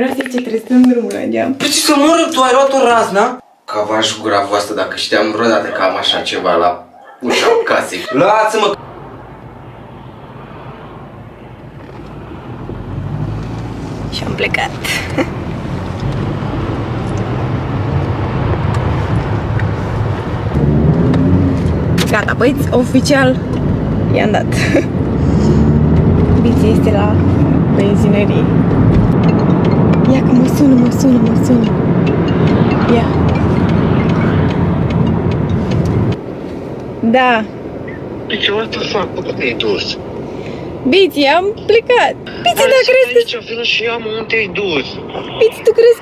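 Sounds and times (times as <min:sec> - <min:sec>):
car engine and road noise: 0:07.7 - 0:46.0.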